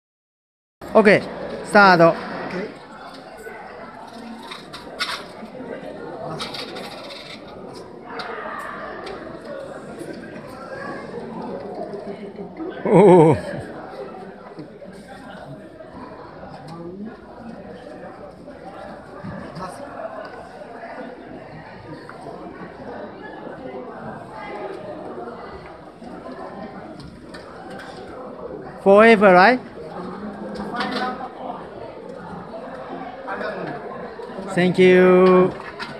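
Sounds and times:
faint chatter of voices: 0.8 - 35.9.

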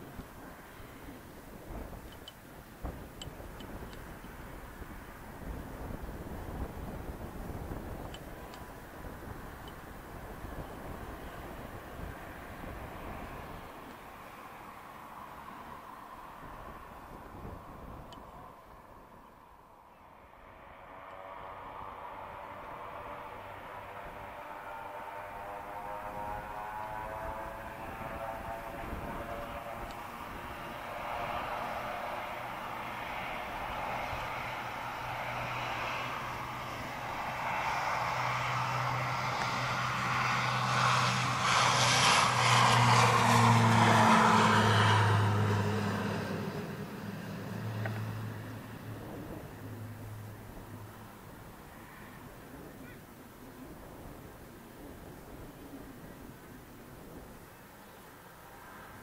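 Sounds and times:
turboprop aircraft taking off: 0.0 - 59.0.

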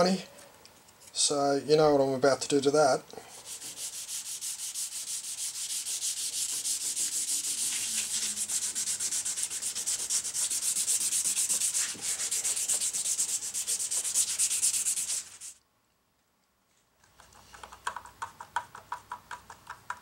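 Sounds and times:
plastic rubbed on sandpaper: 3.4 - 15.6.

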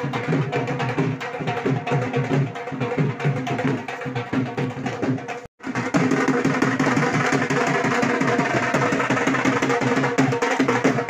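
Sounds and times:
drum beaten in fast rhythm: 0.0 - 11.0.

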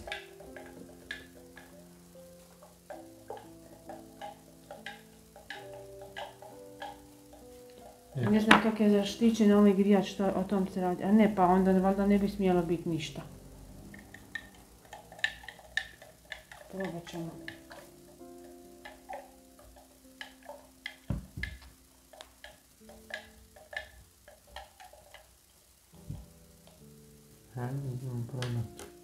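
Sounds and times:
soft background music: 0.0 - 29.0.

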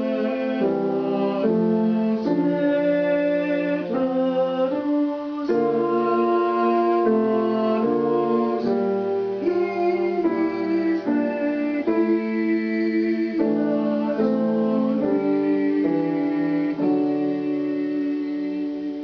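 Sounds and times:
grand piano accompaniment: 0.0 - 19.0
person singing slow melody: 0.0 - 19.0.

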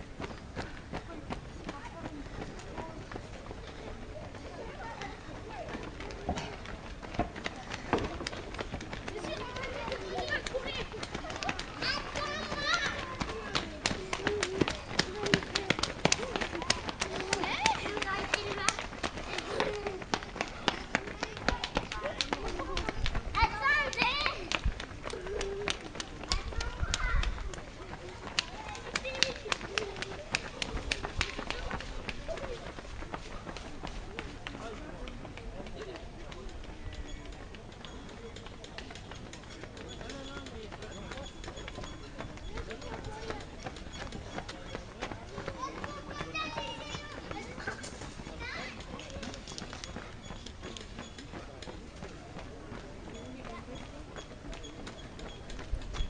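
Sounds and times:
spectators talking indistinctly: 0.0 - 56.0.

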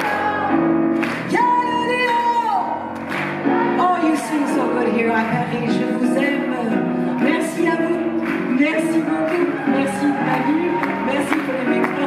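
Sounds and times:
grand piano accompaniment: 0.0 - 12.0
woman singing jazz-soul: 3.8 - 12.0.

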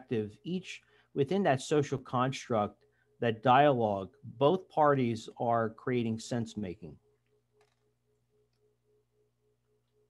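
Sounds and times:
faint steady hum: 0.0 - 10.0
faint pulsing tone: 1.9 - 10.0.

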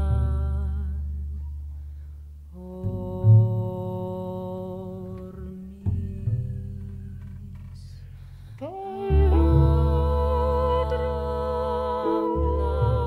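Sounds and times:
chamber jazz ensemble music: 2.8 - 13.0
voices humming wordlessly: 8.6 - 13.0.

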